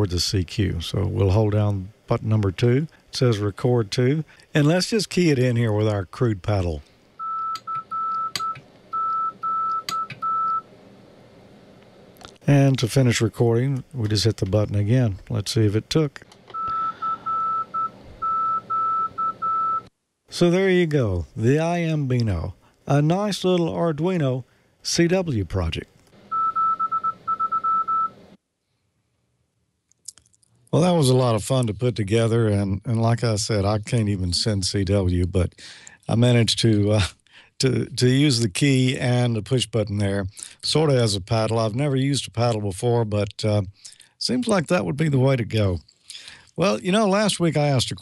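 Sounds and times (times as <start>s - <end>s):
morse code beeping: 7.2s - 10.6s, 16.5s - 19.9s, 26.3s - 28.1s.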